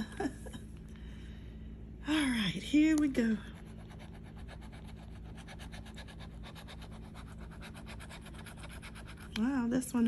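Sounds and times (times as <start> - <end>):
scratching lottery ticket coating: 3.6 - 9.6.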